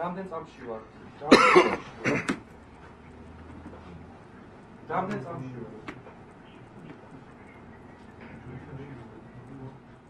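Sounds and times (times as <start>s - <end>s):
person coughing: 1.3s - 2.4s.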